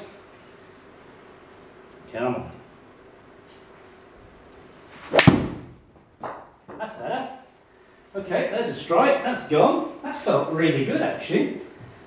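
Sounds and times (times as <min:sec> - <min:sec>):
golf club whoosh: 0:04.9 - 0:05.9
club striking golf ball: 0:05.0 - 0:06.5.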